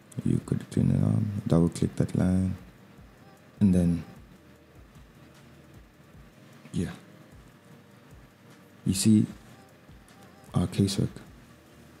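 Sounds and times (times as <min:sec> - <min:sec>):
low hiss and hum: 0:00.0 - 0:12.0.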